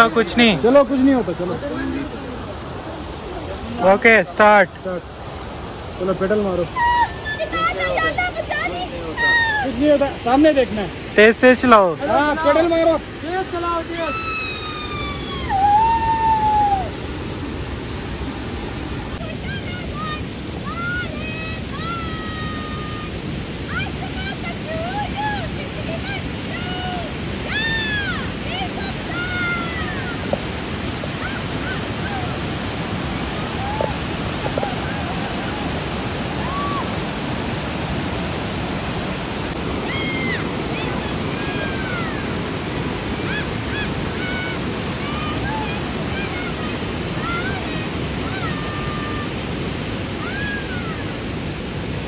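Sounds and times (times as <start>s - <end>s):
distant voices calling out: 1.8s - 11.2s, 23.8s - 37.3s
high-pitched sliding tones: 6.7s - 8.5s
wind rumbling on microphone: 12.8s - 52.0s.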